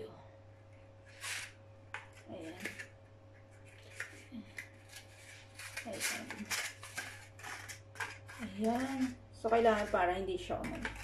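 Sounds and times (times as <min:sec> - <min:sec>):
paper liners crinkling: 0:01.1 - 0:11.0.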